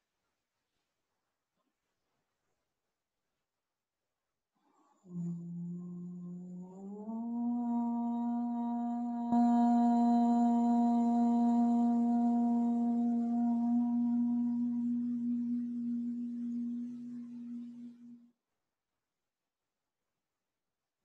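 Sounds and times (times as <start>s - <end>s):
person chanting om: 5.0s - 18.2s.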